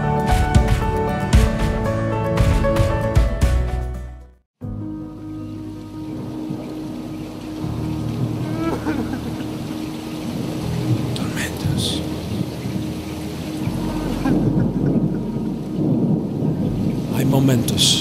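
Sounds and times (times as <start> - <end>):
rain falling steadily: 5.2 - 18.0
rolling thunder: 7.6 - 18.0.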